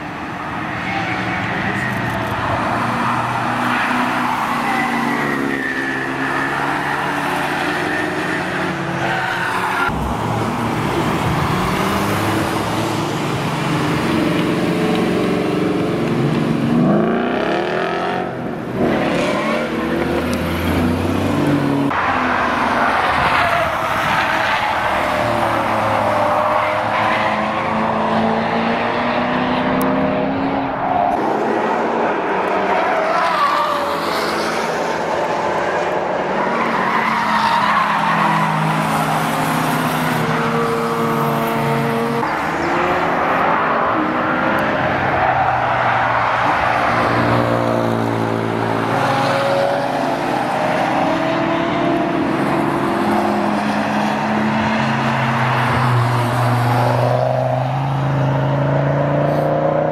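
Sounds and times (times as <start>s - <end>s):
car engines revving past: 1.2s - 59.9s.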